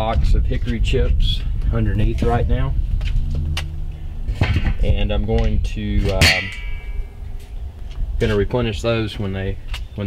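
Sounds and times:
metal lid clanking: 4.3s - 4.9s, 6.0s - 7.1s.

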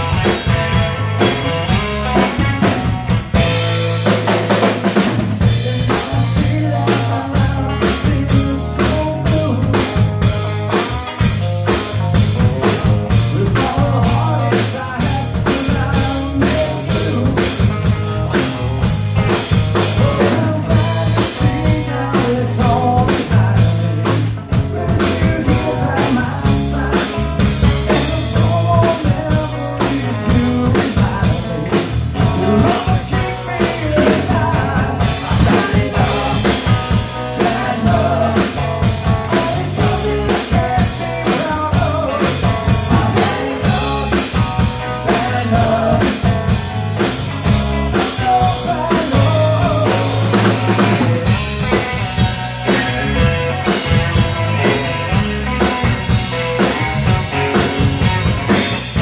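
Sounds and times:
drum kit beat: 0.0s - 59.0s
electric bass: 0.0s - 59.0s
electric guitar melody: 0.0s - 59.0s.

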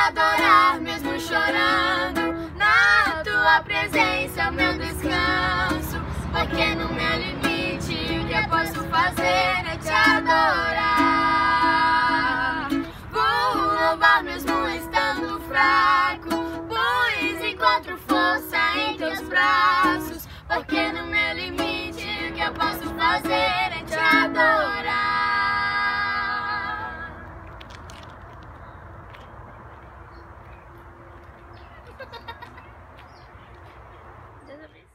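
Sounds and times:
ukulele strumming: 0.0s - 27.2s
girl and woman singing: 0.0s - 27.3s.

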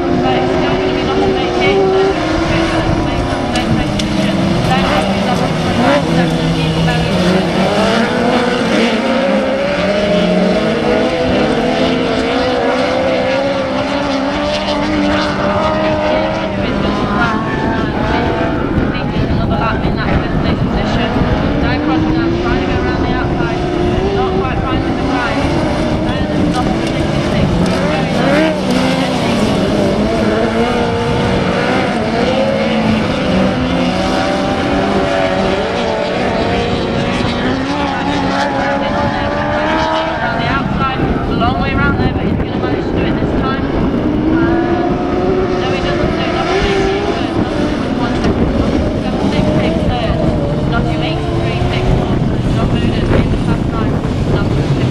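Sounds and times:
racing buggy engines revving: 0.0s - 54.9s.

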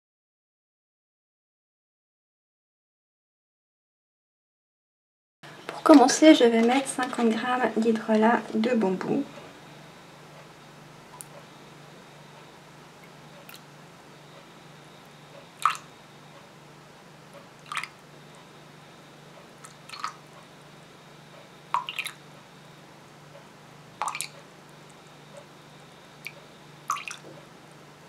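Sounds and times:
liquid dripping into metal bowl: 19.6s - 20.2s, 21.7s - 22.2s, 24.0s - 24.4s, 26.2s - 27.2s.

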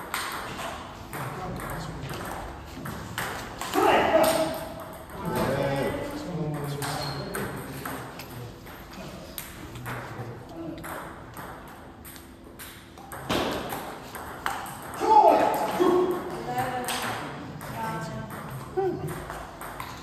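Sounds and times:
table tennis balls clicking: 6.5s - 20.0s.

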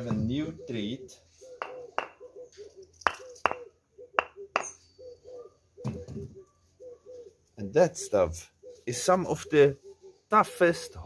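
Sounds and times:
dove cooing: 0.0s - 7.5s, 8.1s - 11.0s
firewood pieces knocked together: 1.6s - 2.2s, 3.1s - 4.8s.

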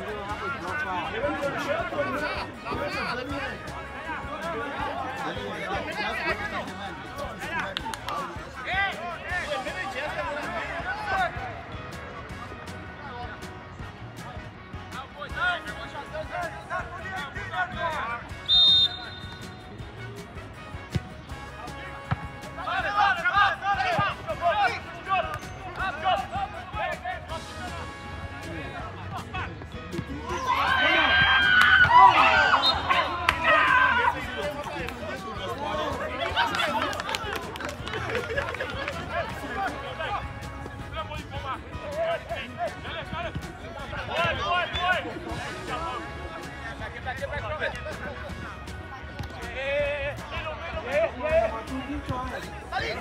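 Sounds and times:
players calling and shouting: 0.0s - 53.0s
referee's whistle blast: 18.4s - 19.7s, 32.1s - 33.2s.

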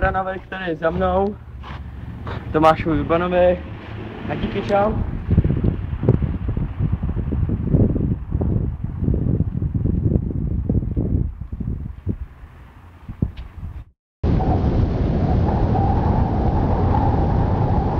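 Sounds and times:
steady rumbling noise: 0.0s - 17.9s
wind buffeting microphone: 0.0s - 17.9s.

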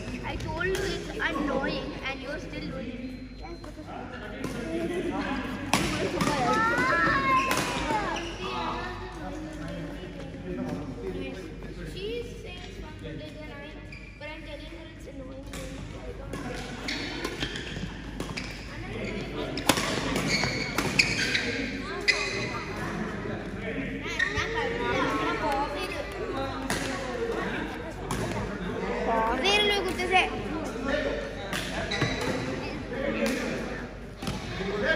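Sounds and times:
sneakers squeaking on court: 6.0s - 8.7s, 13.7s - 14.5s, 15.6s - 22.8s, 31.6s - 32.8s.

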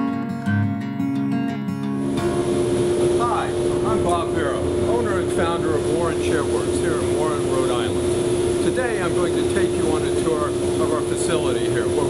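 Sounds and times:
shop machinery droning: 2.0s - 12.0s
man talking: 3.2s - 8.0s, 8.6s - 12.0s.

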